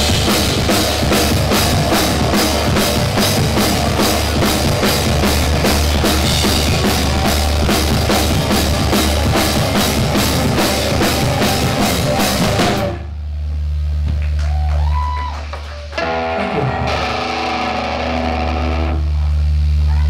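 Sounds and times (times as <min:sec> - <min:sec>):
rock band playing: 0:00.0 - 0:13.1, 0:15.5 - 0:19.1
low amplifier hum: 0:00.0 - 0:20.0
ringing guitar notes: 0:16.0 - 0:19.0.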